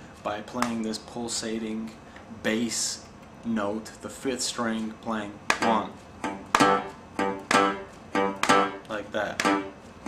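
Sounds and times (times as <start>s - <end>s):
resonator guitar bass note: 5.6s - 9.8s.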